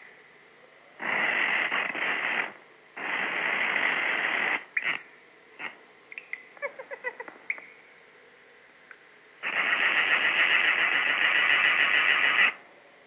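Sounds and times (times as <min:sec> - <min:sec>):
hissing rush of noise: 0:01.0 - 0:05.0, 0:09.4 - 0:12.6.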